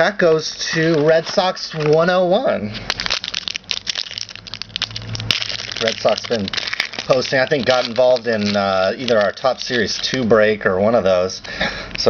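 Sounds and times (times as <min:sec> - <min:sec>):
card pack wrapper crinkling: 0:00.7 - 0:02.2, 0:02.8 - 0:10.3.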